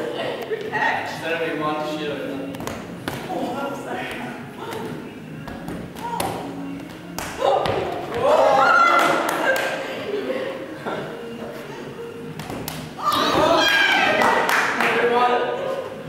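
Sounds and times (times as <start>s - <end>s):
balls thudding on floor: 7.2s - 8.4s
women laughing: 8.4s - 11.9s.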